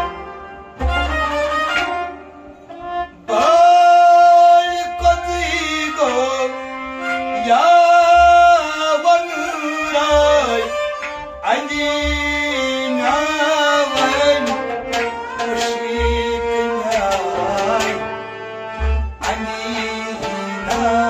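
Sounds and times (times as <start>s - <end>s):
bowed sarangi: 0.0s - 21.0s
harmonium: 0.0s - 21.0s
man singing long sliding notes: 3.1s - 21.0s.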